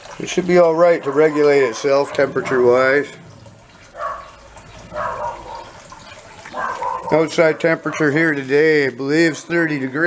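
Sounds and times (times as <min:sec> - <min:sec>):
water trickling and gurgling: 0:00.0 - 0:10.0.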